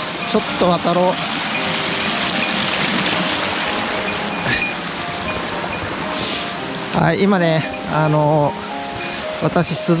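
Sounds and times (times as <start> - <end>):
stream running over rocks: 0.0 - 10.0.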